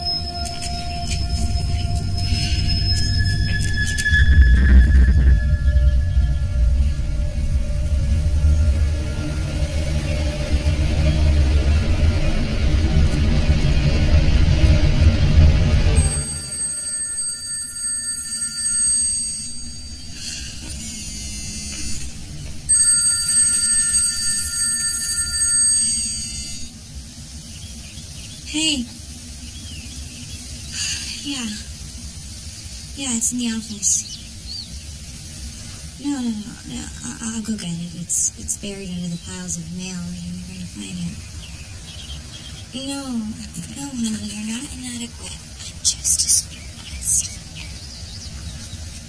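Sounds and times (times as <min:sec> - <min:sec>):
dark film score drone: 0:00.0 - 0:49.0
phone ringing: 0:16.0 - 0:20.2, 0:22.7 - 0:26.7.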